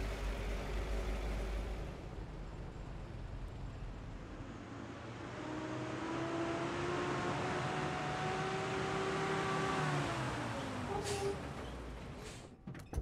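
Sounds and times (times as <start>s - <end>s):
engine running under load: 0.0s - 4.0s.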